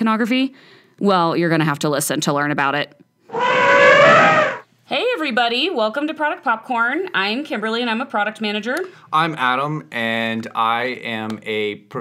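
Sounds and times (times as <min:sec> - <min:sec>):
shrill squealing cry effect: 0:03.3 - 0:04.6.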